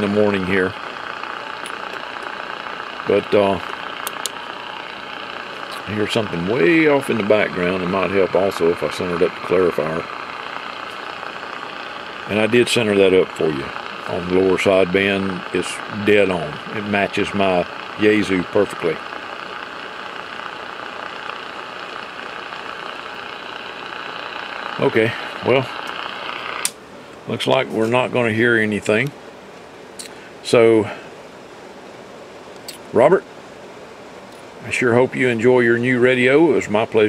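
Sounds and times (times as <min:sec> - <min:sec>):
radio static hiss: 0:00.0 - 0:37.0.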